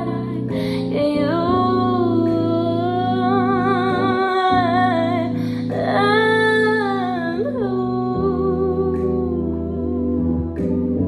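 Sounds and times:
instrumental held chords: 0.0 - 11.0
breath: 0.5 - 0.9, 5.4 - 5.7.

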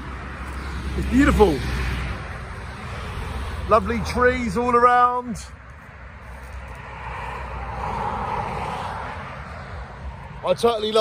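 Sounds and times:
car passing: 0.0 - 11.0.

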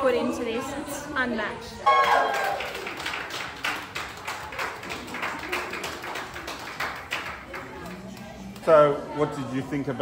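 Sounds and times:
audience clapping: 1.9 - 8.6.

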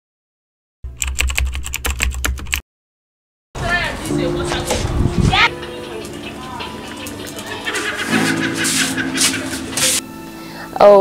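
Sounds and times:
fast keyboard typing: 0.9 - 2.6.

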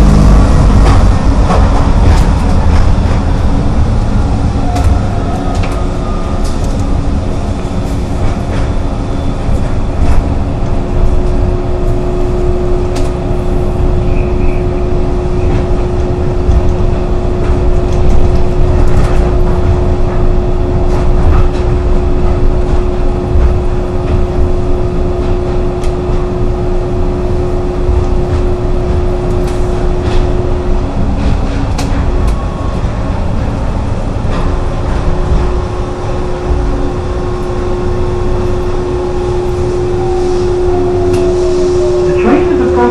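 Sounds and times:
tram rumbling along guideway: 0.0 - 42.9.

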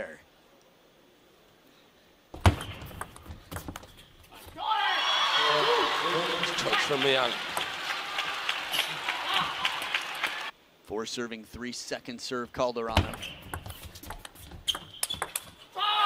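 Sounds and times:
crowd cheering and shouting: 4.6 - 10.5.

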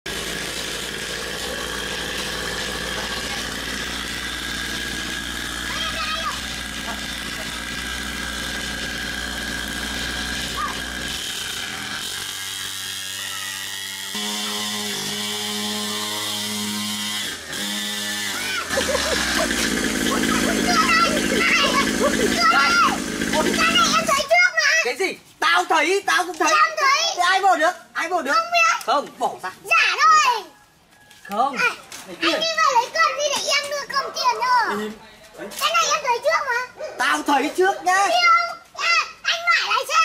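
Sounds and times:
small dirt bike engine buzzing: 0.1 - 24.3.

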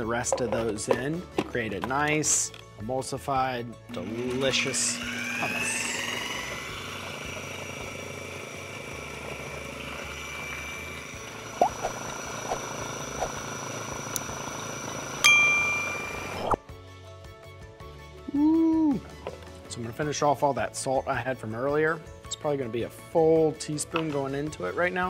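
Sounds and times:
background music: 0.0 - 11.8, 12.4 - 25.0
food processor running: 4.0 - 16.5
bright ding: 15.2 - 16.6.

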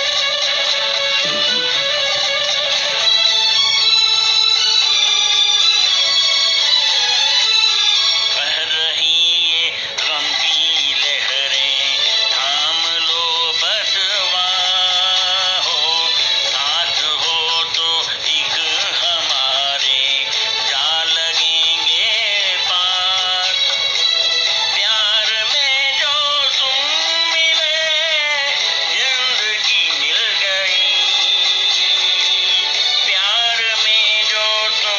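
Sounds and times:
music backing: 0.0 - 34.9
person singing: 1.0 - 5.0, 5.8 - 34.9.

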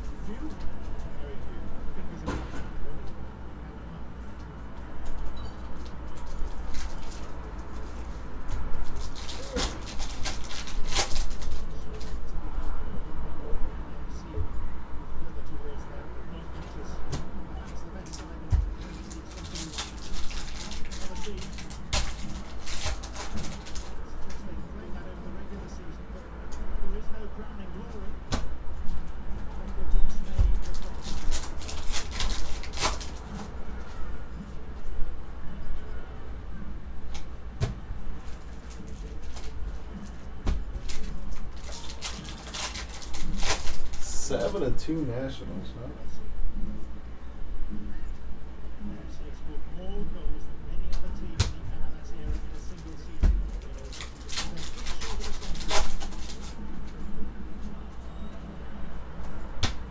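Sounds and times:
steady low hum: 0.0 - 59.9
foil wrappers crinkling: 5.7 - 12.2, 18.0 - 24.4, 30.5 - 33.5, 38.2 - 44.6, 53.5 - 56.6
foil pack tearing open: 8.8 - 12.1, 18.9 - 24.0, 30.6 - 33.4, 40.8 - 44.1, 53.6 - 56.6.

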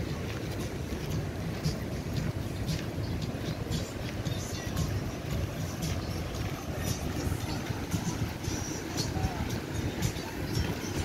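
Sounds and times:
faint music: 0.0 - 11.0
faint voices: 0.0 - 11.0
surf washing: 0.0 - 11.0
wind buffeting microphone: 0.0 - 11.0.

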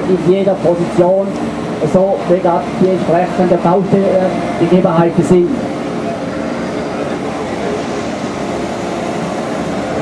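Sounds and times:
excavator engine and hydraulics: 0.0 - 10.0.

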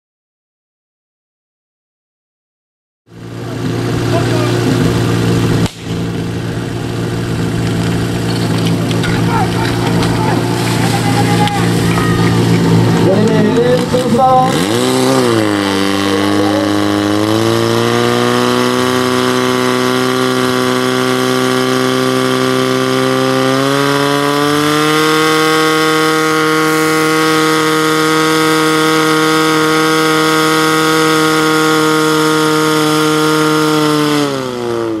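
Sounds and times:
fire pump engine running: 3.1 - 35.0.

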